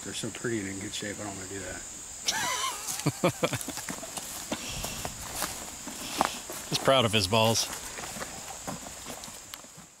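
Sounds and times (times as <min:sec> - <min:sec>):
footsteps through grass: 0:02.4 - 0:10.0.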